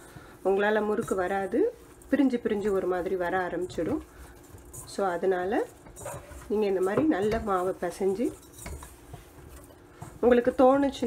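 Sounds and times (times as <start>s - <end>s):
dough squishing in a bowl: 0.0s - 11.0s.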